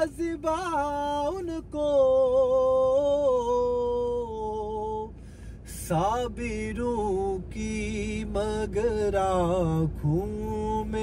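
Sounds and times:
man singing unaccompanied: 0.0s - 5.1s, 5.7s - 11.0s.

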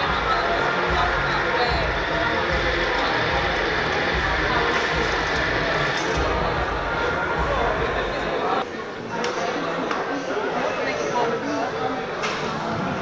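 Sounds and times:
hubbub of many people talking: 0.0s - 13.0s.

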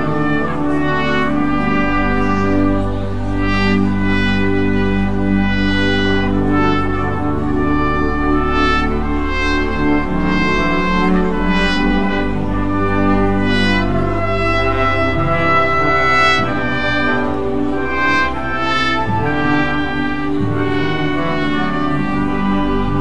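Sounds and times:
brass instruments holding notes: 0.0s - 23.0s
steady low bass: 0.0s - 23.0s.

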